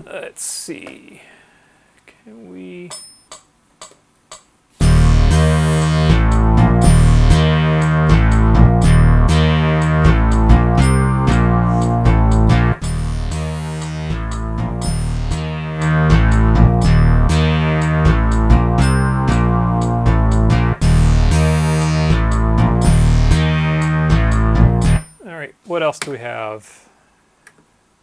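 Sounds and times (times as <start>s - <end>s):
synthesizer bass line: 4.8s - 25.1s.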